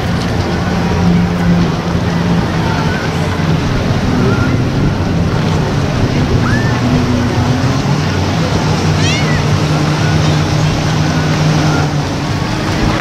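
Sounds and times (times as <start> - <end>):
low motor hum: 0.0 - 13.0
wind on microphone: 0.0 - 13.0.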